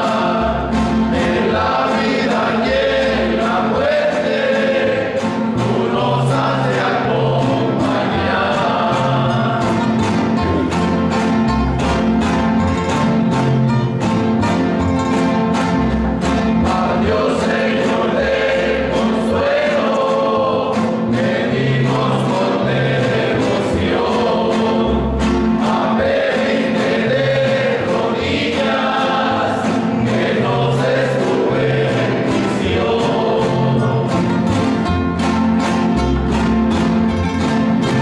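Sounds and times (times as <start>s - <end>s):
group of voices singing: 0.0s - 11.4s, 16.1s - 35.9s
classical guitars strumming: 0.0s - 38.0s.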